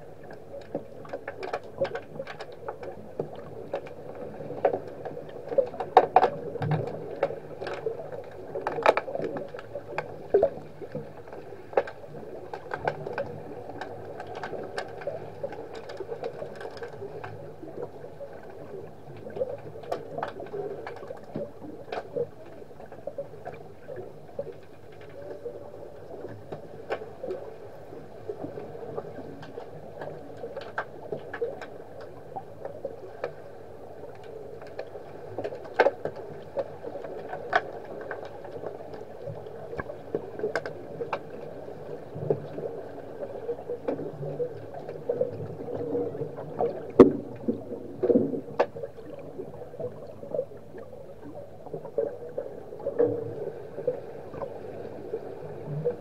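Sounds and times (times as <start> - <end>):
muffled underwater wash: 0.0 - 56.0
underwater clicks and knocks: 0.2 - 27.5, 28.3 - 33.4, 34.1 - 54.5.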